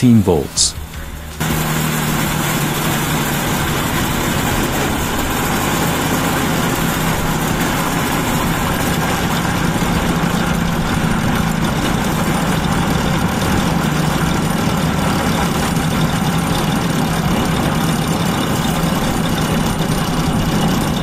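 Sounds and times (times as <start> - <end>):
steam rushing: 0.0 - 21.0
low motor hum: 0.7 - 21.0.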